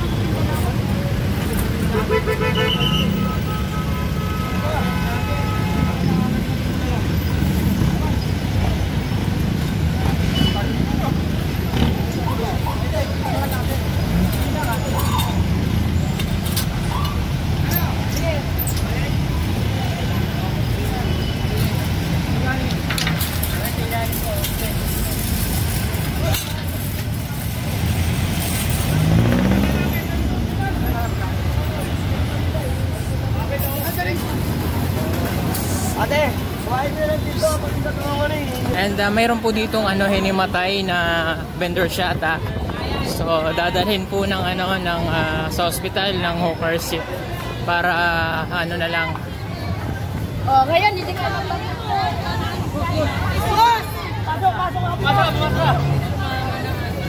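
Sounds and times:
busy street traffic: 0:00.0 - 0:57.0
vehicle horn: 0:01.9 - 0:06.1.

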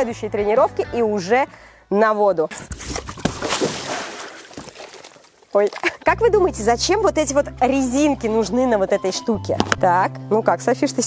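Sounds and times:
pool water splashing: 0:02.8 - 0:06.1.

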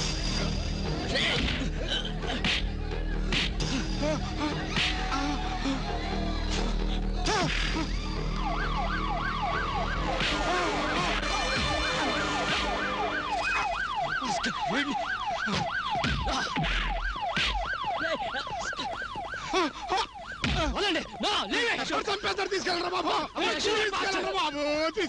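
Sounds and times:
film background music: 0:00.0 - 0:15.0
police siren sweeping: 0:02.9 - 0:21.2.

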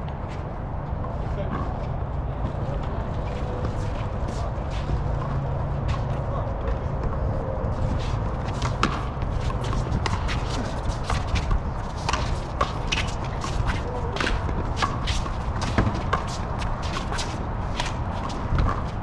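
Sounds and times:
shoes scuffing on court: 0:00.0 - 0:19.0.

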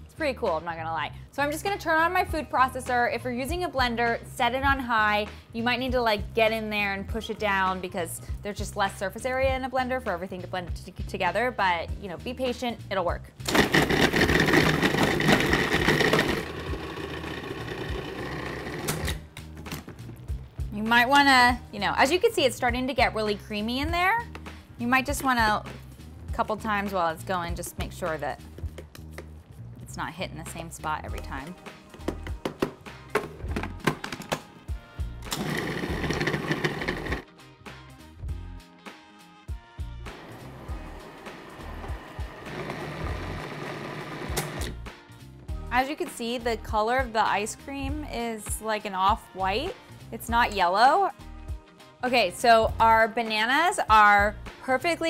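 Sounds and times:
background music with steady beat: 0:00.0 - 0:55.0
food processor chopping: 0:13.5 - 0:19.2, 0:35.3 - 0:37.2, 0:40.2 - 0:44.7.

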